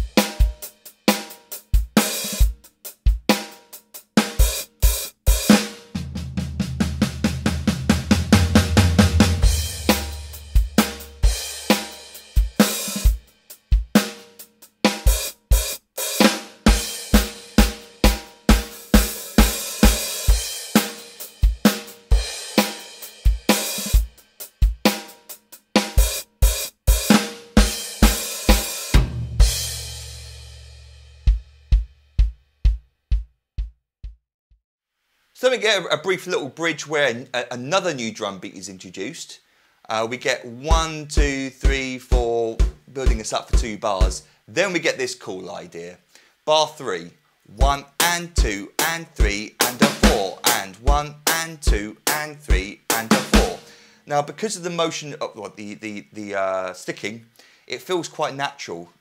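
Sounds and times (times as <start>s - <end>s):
electronic drum kit rock beat: 0.0s - 33.8s, 40.6s - 44.2s, 47.6s - 53.8s
low ringing drum hits: 7.5s - 11.6s
cymbal crashes: 8.5s - 13.4s, 27.6s - 31.2s.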